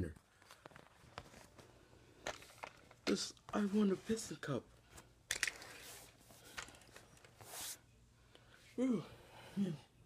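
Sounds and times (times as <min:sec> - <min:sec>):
small clicks of toy cars: 0:05.3 - 0:05.7
toy cars rustling: 0:05.3 - 0:07.6.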